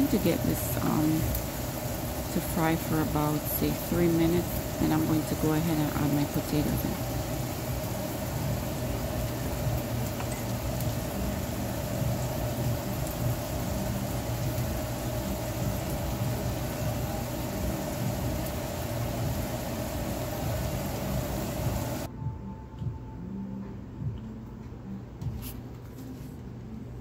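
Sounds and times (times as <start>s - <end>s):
vegetables sizzling in oil: 0.0s - 22.1s
constant low hum: 0.0s - 27.0s.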